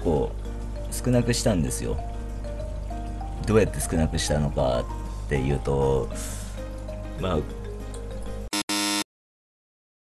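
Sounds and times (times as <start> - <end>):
background music: 0.0 - 8.6
electronic buzzer: 8.5 - 9.1.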